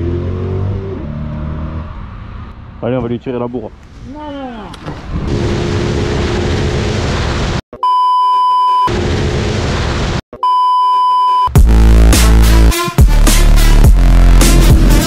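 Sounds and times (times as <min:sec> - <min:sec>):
test-card beep: 0:07.8 - 0:08.9, 0:10.4 - 0:11.5
electronic music with heavy beat: 0:11.5 - 0:15.0.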